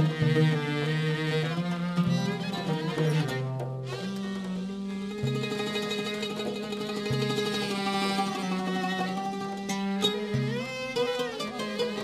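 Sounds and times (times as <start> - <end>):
traditional string music: 0.0 - 12.0.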